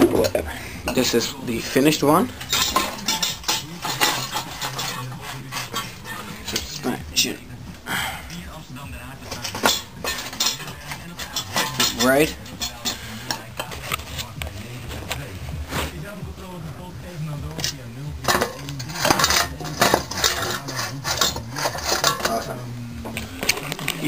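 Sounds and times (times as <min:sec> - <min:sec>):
metallic clinks and knocks: 0:02.4 - 0:06.9, 0:09.3 - 0:14.1.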